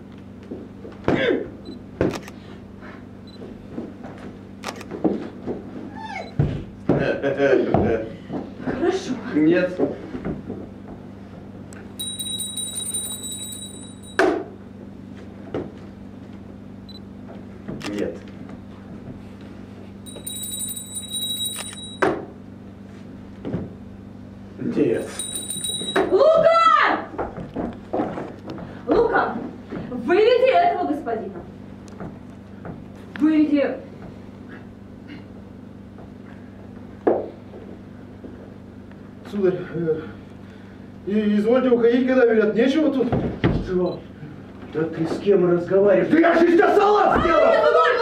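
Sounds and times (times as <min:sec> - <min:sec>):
steady low hum: 0:00.0 - 0:46.2
pulsing electronic ringing: 0:12.0 - 0:14.2, 0:20.1 - 0:22.0, 0:25.0 - 0:26.1.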